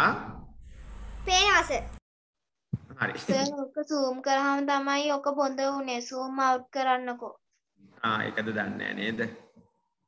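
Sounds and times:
child's voice: 1.2s - 2.0s, 3.3s - 7.4s.

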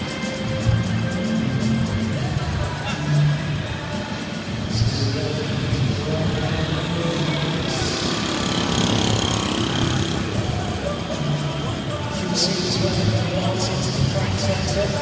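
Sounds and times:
crowd noise: 0.0s - 15.0s
music: 0.0s - 15.0s.

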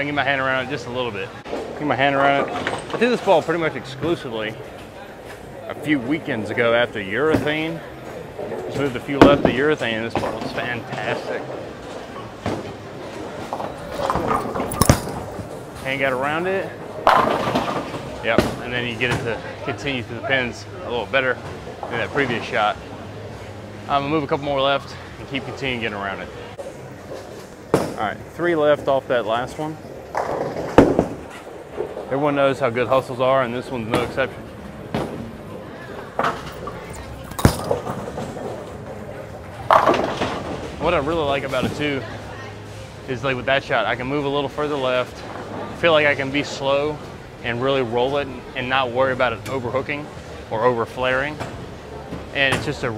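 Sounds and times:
bowling alley hum: 0.0s - 52.9s
bowling ball crashing into pins: 16.9s - 19.3s, 30.1s - 32.1s, 39.6s - 40.8s.

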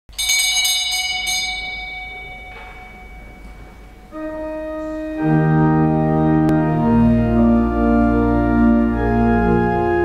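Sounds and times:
small high-pitched bell ringing: 0.1s - 4.1s.

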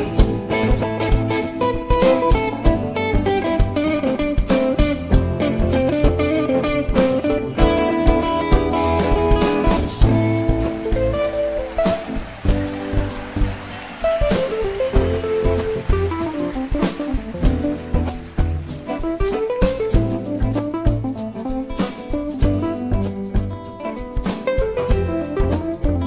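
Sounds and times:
upright bass: 0.0s - 23.8s, 24.6s - 26.0s
drum kit with cymbals: 0.0s - 26.0s
electric guitar lead: 0.0s - 26.0s.

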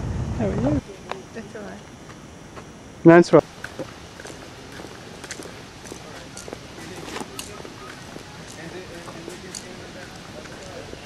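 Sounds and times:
outdoor ambience: 0.0s - 11.0s
faint voices: 0.4s - 11.0s
light irregular clicks: 7.3s - 10.8s.

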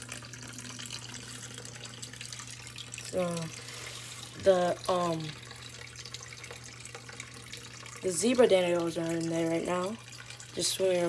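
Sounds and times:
water splashing and trickling: 0.0s - 11.0s.

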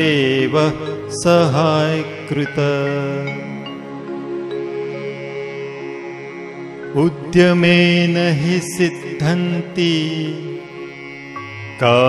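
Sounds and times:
person singing a verse: 0.0s - 3.8s, 6.8s - 10.9s, 11.7s - 12.0s
sustained accompaniment tones: 0.0s - 12.0s.

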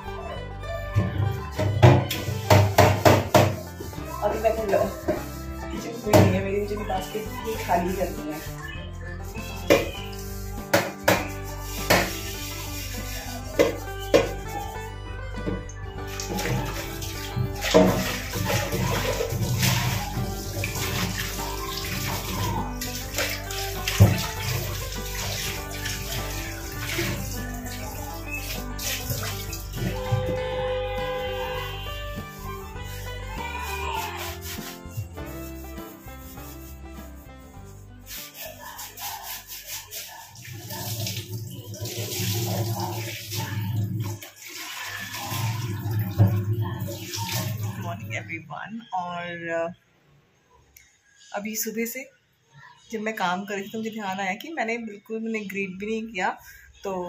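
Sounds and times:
background music: 0.0s - 50.1s
kitchen tap running: 1.5s - 14.8s, 15.4s - 30.2s, 38.1s - 48.2s.

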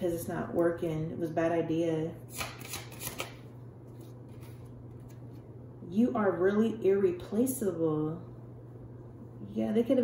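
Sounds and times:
cards being shuffled: 2.3s - 5.5s.

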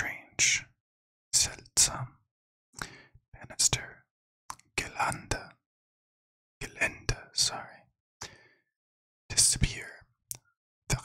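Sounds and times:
man whispering: 0.0s - 0.7s, 1.4s - 2.1s, 2.8s - 4.0s, 4.6s - 5.6s, 6.6s - 8.4s, 9.3s - 10.1s.

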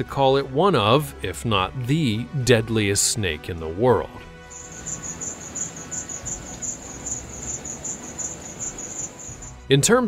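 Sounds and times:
insects chirping in a trill: 4.5s - 9.6s.

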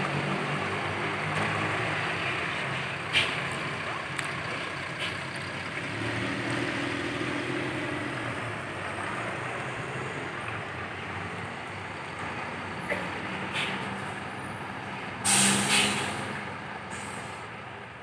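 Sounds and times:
bus diesel engine droning: 0.0s - 18.0s
air brake hiss: 15.2s - 16.3s, 16.9s - 17.4s.

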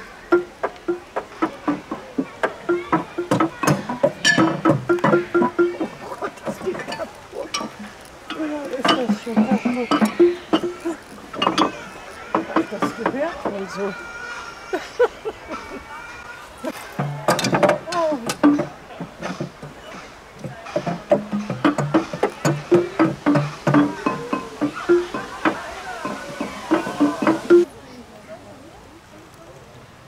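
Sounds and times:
wooden xylophone notes: 0.0s - 14.0s, 16.6s - 27.7s.

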